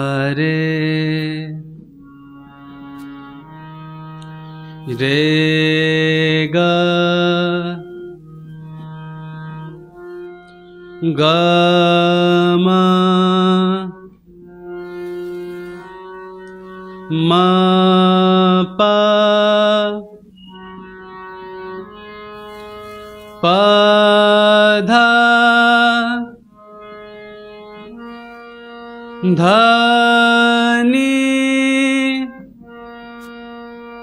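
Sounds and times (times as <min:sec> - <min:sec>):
harmonium notes over drone: 0:00.0 - 0:34.0.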